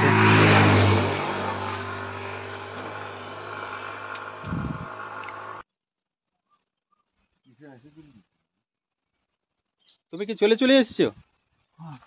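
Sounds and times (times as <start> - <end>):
scooter passing by: 0.0 - 5.6.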